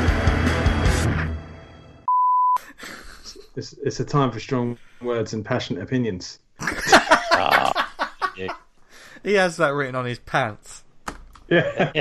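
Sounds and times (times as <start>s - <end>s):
man speaking: 3.4s - 10.8s, 11.5s - 12.0s.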